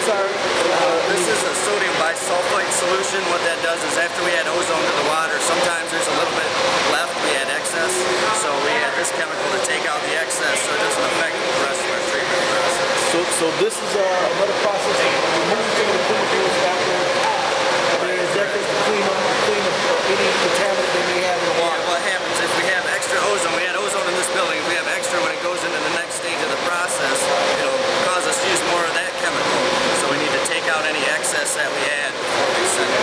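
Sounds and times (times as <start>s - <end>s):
indistinct conversation: 0.0s - 33.0s
machinery drone and hum: 0.0s - 33.0s.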